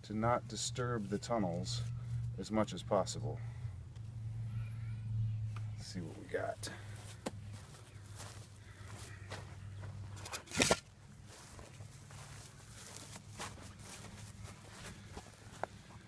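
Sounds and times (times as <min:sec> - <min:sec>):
steady low hum: 0:00.0 - 0:16.0
footsteps on dry grass and dirt: 0:06.0 - 0:16.0.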